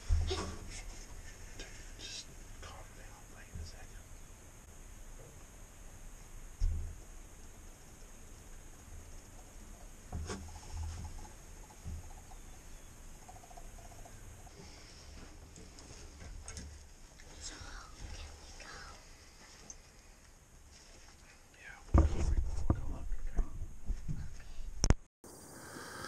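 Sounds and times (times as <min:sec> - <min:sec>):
soft low thumps of movement: 0:00.0 - 0:25.0
hushed whispering: 0:00.3 - 0:04.1, 0:17.3 - 0:19.3, 0:21.3 - 0:23.5.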